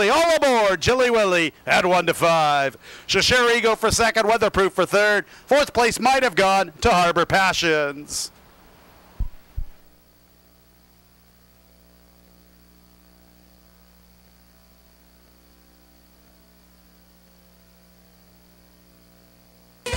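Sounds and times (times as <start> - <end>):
electrical mains hum: 0.0 - 19.9
faint hiss: 5.0 - 19.9
short low thumps: 9.2 - 9.9.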